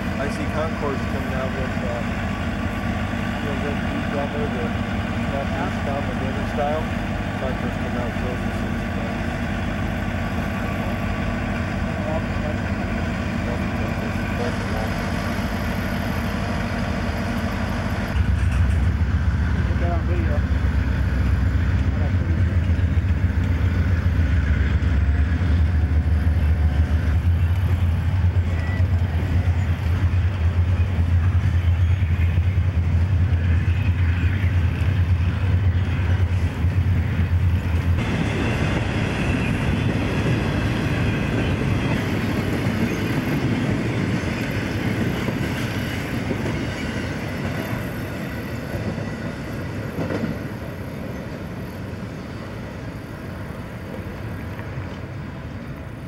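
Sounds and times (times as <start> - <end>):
freight train rumbling past: 0.0 - 56.0.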